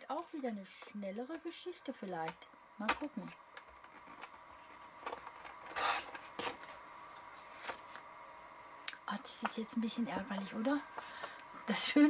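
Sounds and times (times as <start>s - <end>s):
paper trimmer blade rasping: 5.7s - 6.1s.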